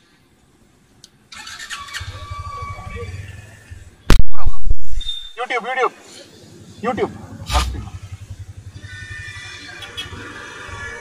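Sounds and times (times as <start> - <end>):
motorcycle engine idling: 1.4 - 4.1, 6.3 - 10.3.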